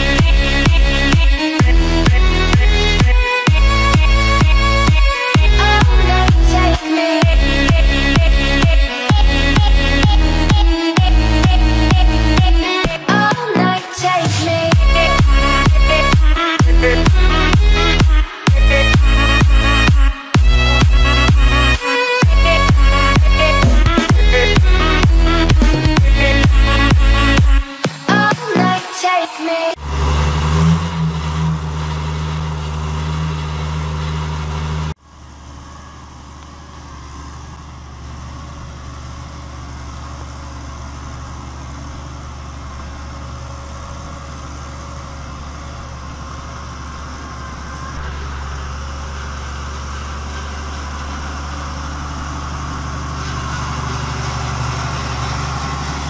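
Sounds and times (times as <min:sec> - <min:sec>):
tractor diesel engine idling: 0:00.0 - 0:28.9, 0:29.7 - 0:56.0.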